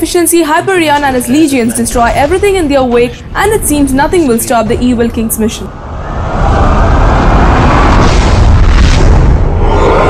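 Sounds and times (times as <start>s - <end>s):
low booming and rumbling effects: 2.0s - 10.0s.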